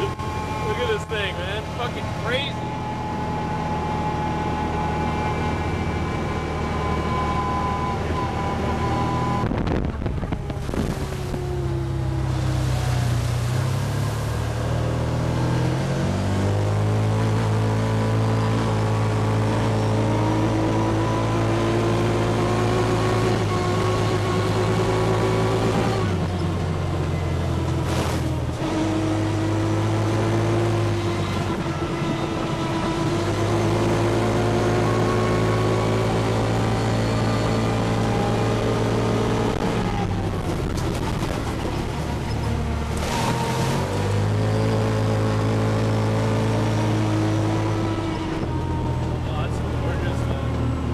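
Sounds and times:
tyres on gravel road: 0.0 - 17.8, 18.4 - 50.9
utility vehicle engine droning: 0.0 - 50.9.

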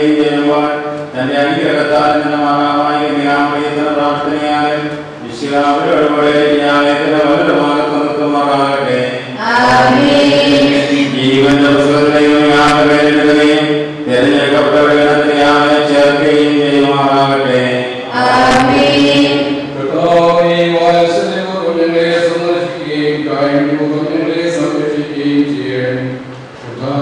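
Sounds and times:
voices singing a slow hymn: 0.0 - 27.0.

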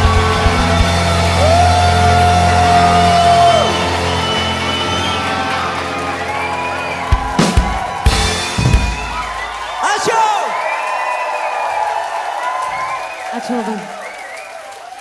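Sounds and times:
rock band playing: 0.0 - 9.8
sharp drum hits: 7.5 - 9.5.

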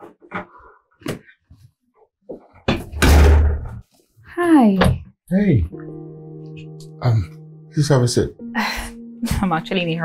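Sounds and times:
door pushed shut with thud: 2.7 - 3.8.

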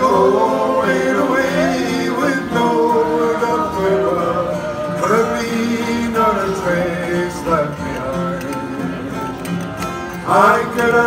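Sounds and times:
acoustic string band playing: 0.0 - 11.0
guitar picking: 0.0 - 11.0.

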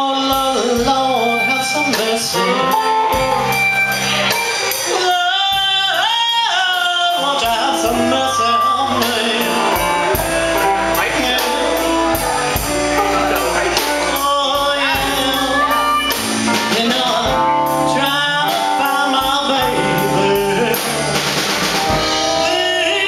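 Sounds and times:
electric guitars: 0.0 - 23.0
steady drum beat: 0.0 - 23.0.

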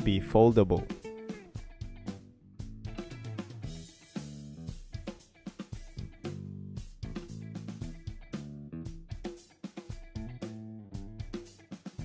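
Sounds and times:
instrumental music with drums: 0.0 - 12.0.

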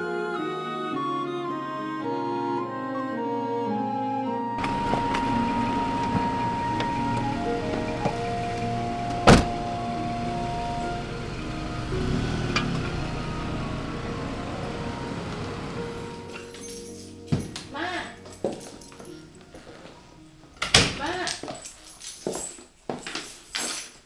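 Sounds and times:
background music: 0.0 - 22.5
traffic and street noise: 4.6 - 21.3.

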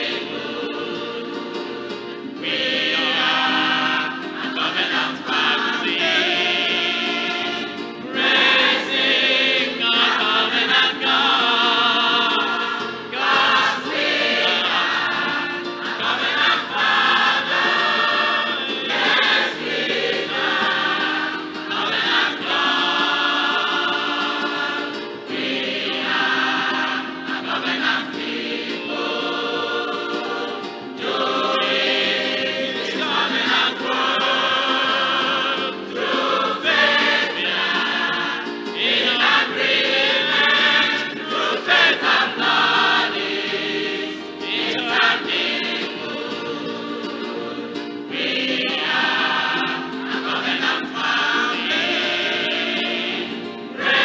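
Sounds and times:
choir singing gospel: 0.0 - 54.0.

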